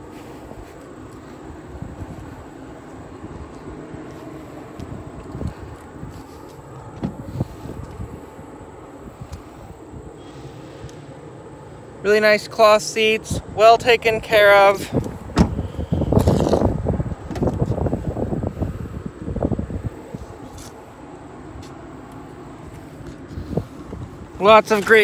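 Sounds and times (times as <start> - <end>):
outdoor background noise: 0.0 - 25.0.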